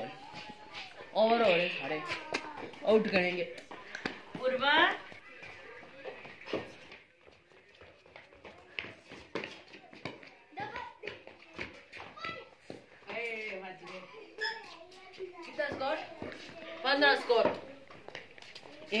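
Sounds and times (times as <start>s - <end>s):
scattered voices: 0.0s - 12.2s.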